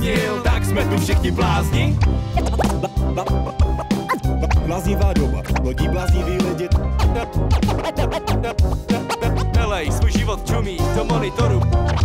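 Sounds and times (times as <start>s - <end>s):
bass-heavy hip hop beat: 0.0s - 12.0s
turntable scratching: 0.9s - 12.0s.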